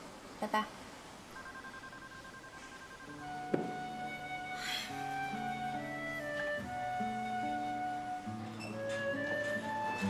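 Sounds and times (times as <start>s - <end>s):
phone call-ended tone: 1.4s - 4.3s.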